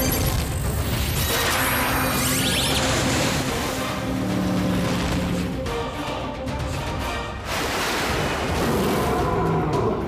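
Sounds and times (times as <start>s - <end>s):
background music: 0.0s - 10.0s
water rushing and spraying: 2.7s - 5.6s, 7.3s - 9.1s.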